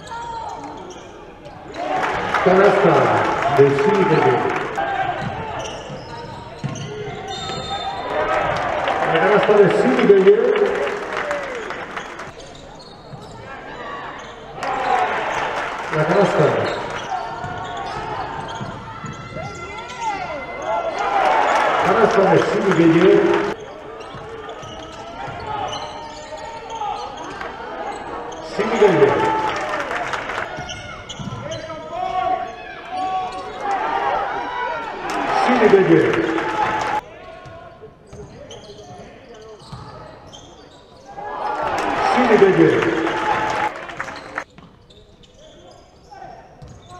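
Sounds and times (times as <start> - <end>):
sneaker squeaks: 0.0 - 1.9, 5.0 - 8.1, 12.0 - 14.6, 16.2 - 21.6, 22.7 - 29.4, 30.5 - 33.8, 37.4 - 41.2, 44.0 - 46.9
players' voices: 0.0 - 44.6
basketball bouncing on court: 3.8 - 7.8, 16.4 - 20.3, 30.5 - 31.6, 39.6 - 40.0, 46.6 - 46.9.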